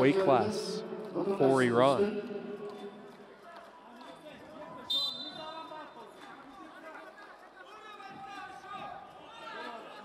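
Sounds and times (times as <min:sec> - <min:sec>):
referee's whistle blast: 0:04.9 - 0:05.6.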